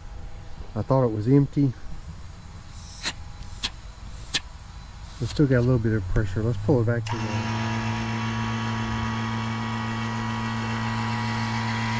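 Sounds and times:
low steady rumble: 0.0 - 7.1
gas hissing from hose fitting: 2.7 - 4.5.

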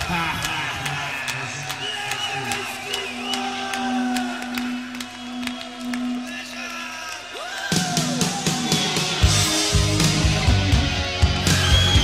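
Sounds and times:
voices from stage or crowd: 0.0 - 9.2.

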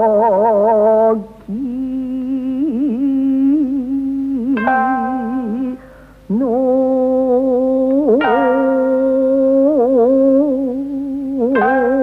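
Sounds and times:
woman singing with vibrato: 0.0 - 12.0
shamisen note ringing: 4.6 - 6.0.

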